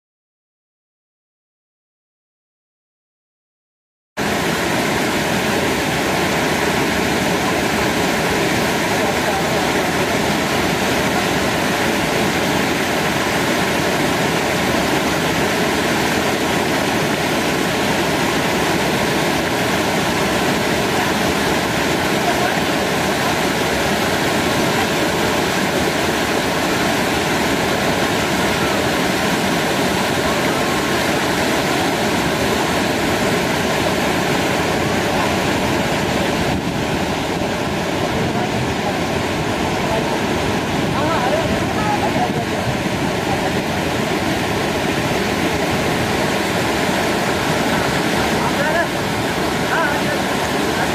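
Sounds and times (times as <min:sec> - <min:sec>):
waterfall rushing: 0:04.2 - 0:50.9.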